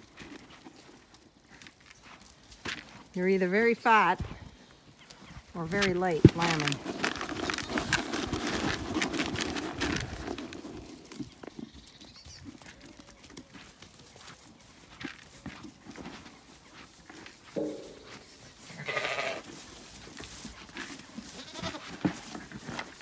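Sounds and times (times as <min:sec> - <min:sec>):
rustles and steps in straw: 0:00.0 - 0:23.0
sheep bleating: 0:18.7 - 0:19.5, 0:21.4 - 0:21.9.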